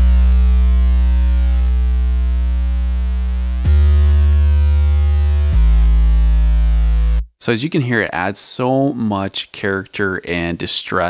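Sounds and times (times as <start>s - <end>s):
distorted sub bass synth notes: 0.0s - 7.3s.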